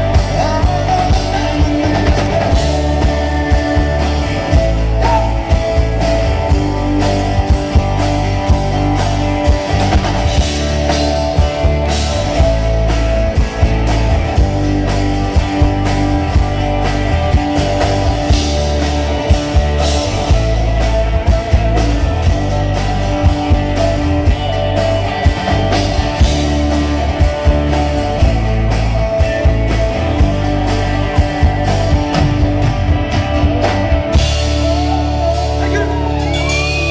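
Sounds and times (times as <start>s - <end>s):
bass: 0.0s - 36.9s
drum kit steady beat: 0.0s - 36.9s
electric guitars: 0.0s - 36.9s.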